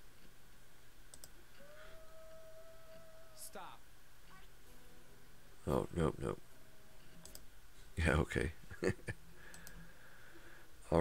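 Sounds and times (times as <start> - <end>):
computer mouse clicks: 1.1 - 1.4, 7.2 - 7.5, 9.4 - 9.8.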